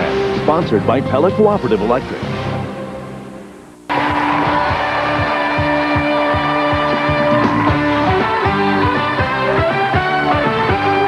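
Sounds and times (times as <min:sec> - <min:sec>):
station bumper music: 0:00.0 - 0:11.0
upbeat rock theme music: 0:03.9 - 0:11.0.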